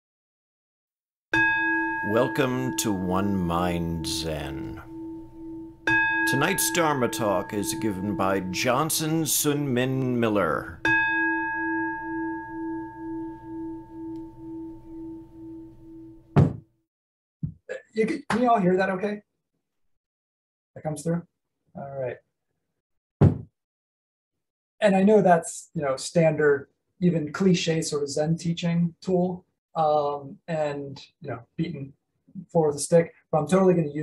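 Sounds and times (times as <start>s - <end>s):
meditation bell ringing: 1.3s - 16.3s.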